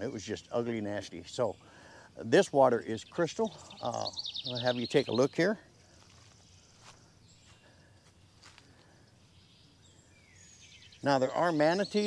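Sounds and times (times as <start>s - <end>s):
footsteps on dry leaves: 5.9s - 8.9s.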